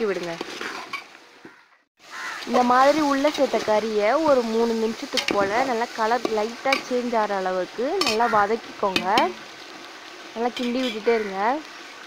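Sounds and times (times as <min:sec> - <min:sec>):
chicken sizzling in hot oil: 0:01.5 - 0:12.0.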